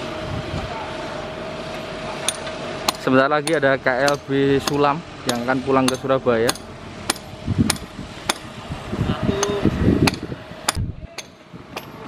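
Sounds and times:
workers' voices: 0:00.0 - 0:12.0
hand hammering: 0:02.3 - 0:08.5, 0:09.4 - 0:12.0.

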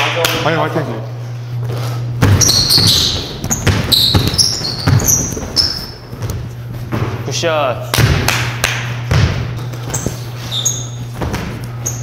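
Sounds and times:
basketballs bouncing on gym floor: 0:02.1 - 0:12.0.

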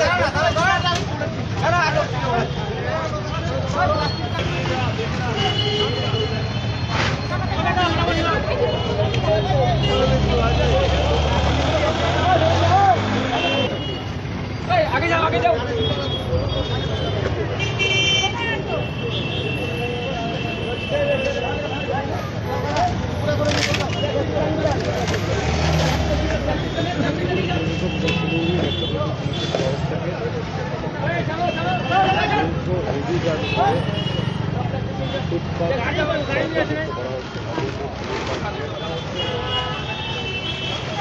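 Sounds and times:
men talking and calling out: 0:00.0 - 0:41.0
road traffic: 0:00.0 - 0:41.0.

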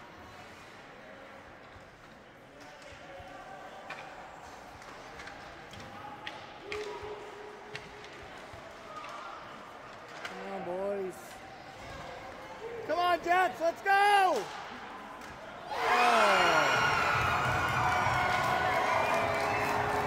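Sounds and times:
murmur of spectators: 0:00.0 - 0:20.0
hockey sticks and puck clacking: 0:03.8 - 0:11.5.

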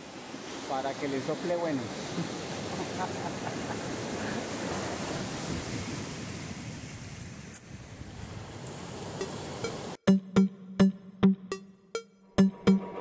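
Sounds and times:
surf washing over rocks: 0:00.0 - 0:07.5, 0:08.2 - 0:10.0
wind on microphone: 0:03.7 - 0:09.5.

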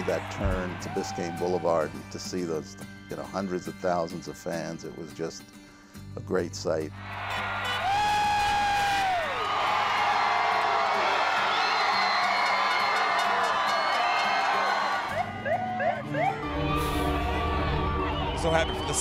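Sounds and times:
crowd cheering and screaming: 0:00.0 - 0:02.0, 0:07.0 - 0:19.0
background music: 0:00.0 - 0:19.0
long whoop: 0:07.8 - 0:18.4.

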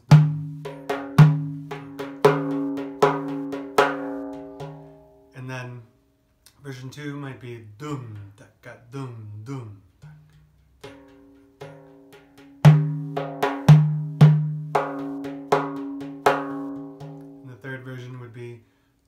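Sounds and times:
frame drum struck by hand: 0:00.0 - 0:05.2, 0:10.0 - 0:17.5.

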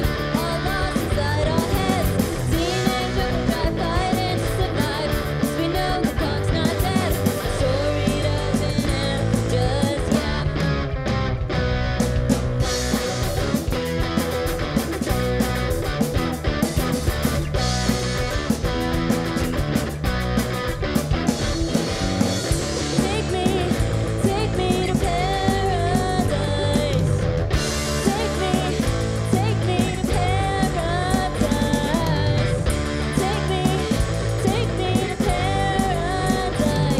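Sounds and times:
rock band playing live: 0:00.0 - 0:36.9
sustained electric guitar notes: 0:00.0 - 0:36.9.

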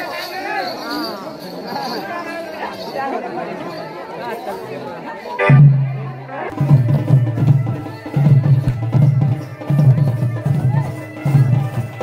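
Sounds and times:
crowd chatter: 0:00.0 - 0:12.0
loud drum beat: 0:05.4 - 0:12.0.

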